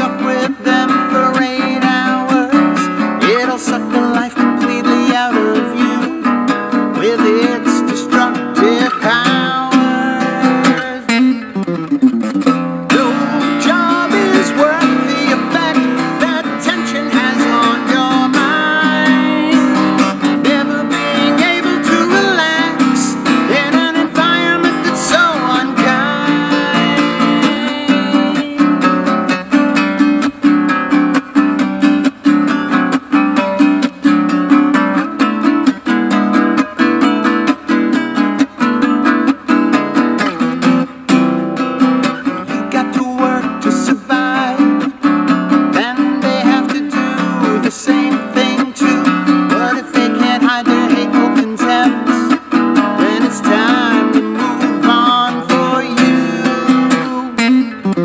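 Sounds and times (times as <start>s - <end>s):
man singing: 0.0s - 11.7s, 12.8s - 30.3s, 42.0s - 58.0s
plucked bass guitar: 0.0s - 58.0s.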